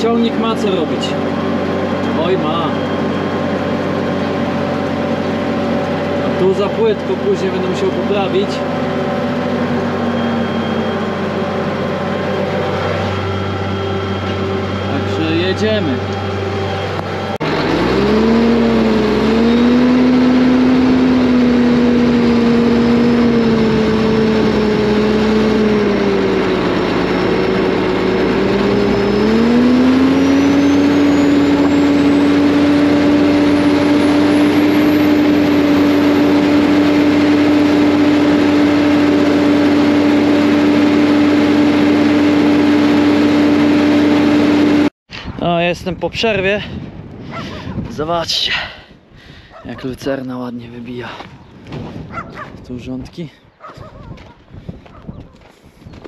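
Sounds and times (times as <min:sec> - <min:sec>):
tractor diesel engine working hard: 0:00.0 - 0:45.0.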